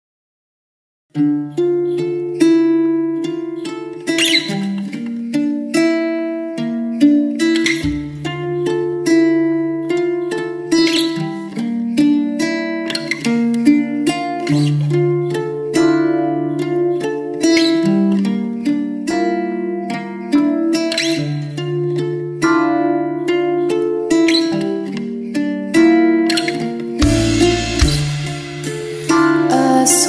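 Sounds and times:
plucked guitar with chords: 1.1s - 30.0s.

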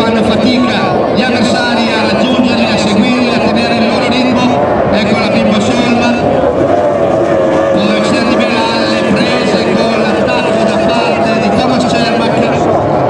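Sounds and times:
commentator talking over loudspeaker: 0.0s - 13.0s
racing boat engines droning: 0.0s - 13.0s.

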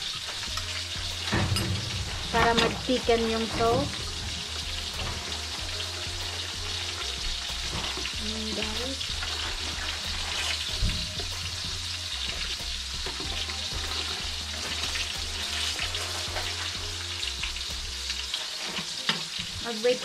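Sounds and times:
low hum: 0.6s - 14.4s.

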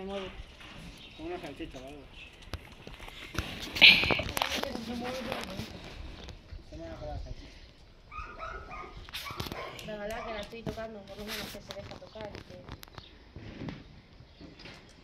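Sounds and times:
dog barking: 8.1s - 10.4s.

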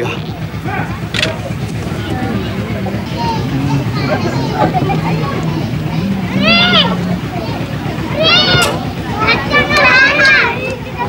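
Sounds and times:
steady low hum: 0.0s - 9.7s
faint background voices: 0.0s - 11.0s.

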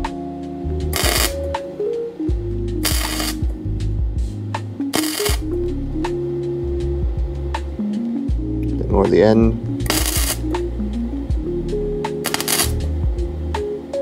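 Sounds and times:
background music: 0.0s - 14.0s
welder arc crackling: 0.8s - 1.6s, 2.8s - 3.6s, 4.8s - 5.9s, 9.0s - 11.0s, 12.1s - 13.7s.

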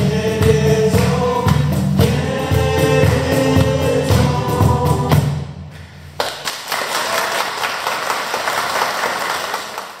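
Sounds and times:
audience applauding: 6.2s - 10.0s.

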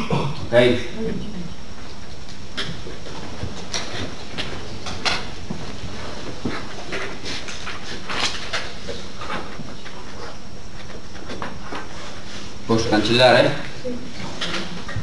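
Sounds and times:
steady room hiss: 0.0s - 15.0s.

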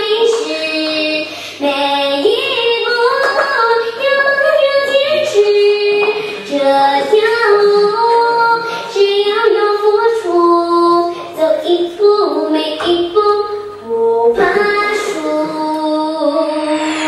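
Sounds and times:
high voice singing: 13.8s - 17.0s.

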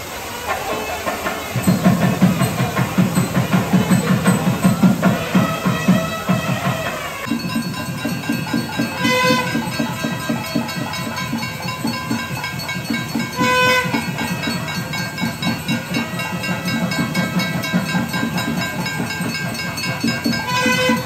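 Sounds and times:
reedy wind instrument: 0.0s - 21.0s
quick drum beat: 1.1s - 21.0s.

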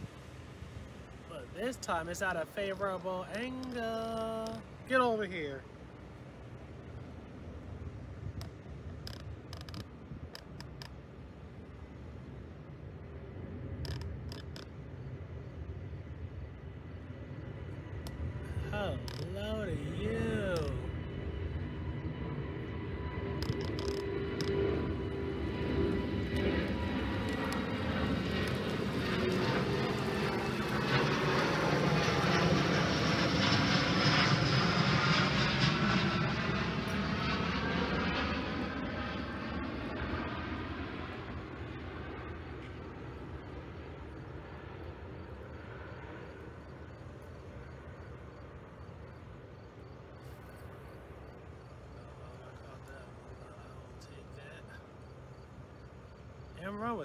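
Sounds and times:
jet airliner passing over: 0.0s - 57.0s.

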